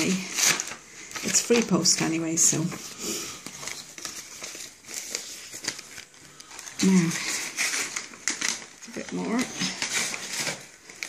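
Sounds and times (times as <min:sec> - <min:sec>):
paper rustling and crinkling: 0:00.0 - 0:11.0.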